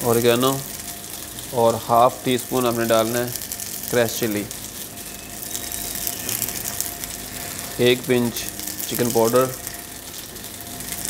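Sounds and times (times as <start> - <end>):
food sizzling in a frying pan: 0.0 - 11.0.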